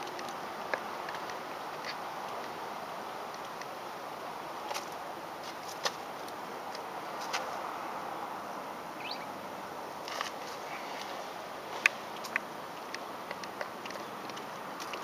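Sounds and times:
outdoor background noise: 0:00.0 - 0:15.0
sharp clicks: 0:11.8 - 0:15.0.

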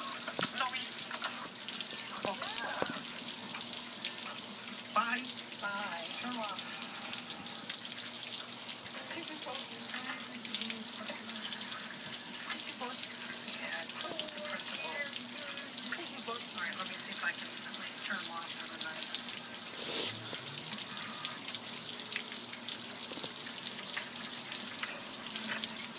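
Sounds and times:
hose water splashing on concrete: 0:00.0 - 0:25.9.

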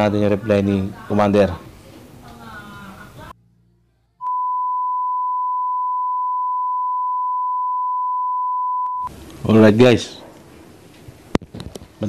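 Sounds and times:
high-pitched test tone beep: 0:04.2 - 0:09.1.

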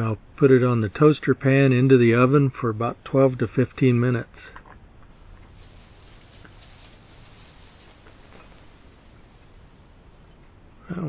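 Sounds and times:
baking paper rustling: 0:05.2 - 0:10.3.

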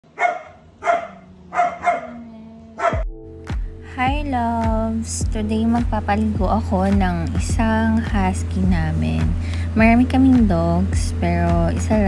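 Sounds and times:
dog barking: 0:00.1 - 0:03.0
music with thumping beat: 0:03.0 - 0:12.0.

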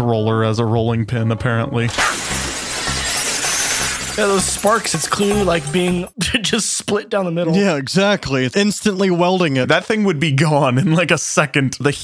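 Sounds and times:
background music: 0:00.9 - 0:06.4
trolley grinding down steel cable: 0:01.9 - 0:05.0.

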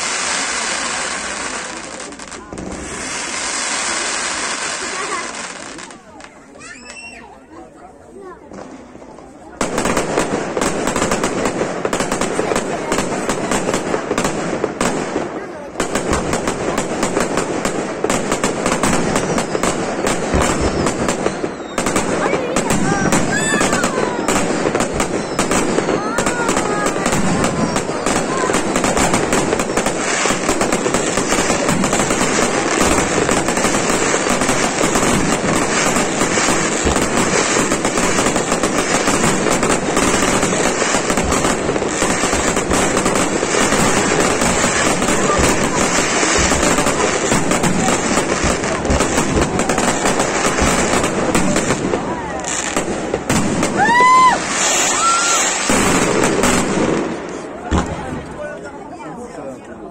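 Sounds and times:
fireworks exploding with crackle: 0:00.0 - 0:59.9.

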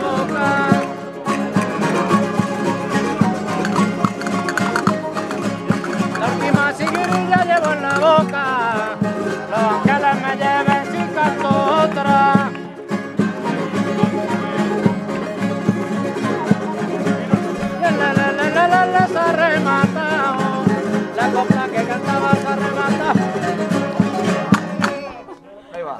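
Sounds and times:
violin melody: 0:00.0 - 0:25.2
strummed guitars: 0:00.0 - 0:25.6
twelve-string lute: 0:00.0 - 0:25.9.

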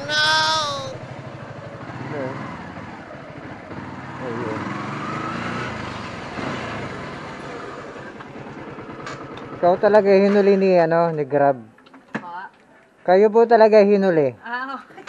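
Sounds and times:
motorcycle engine running: 0:00.9 - 0:05.0, 0:06.2 - 0:09.8.

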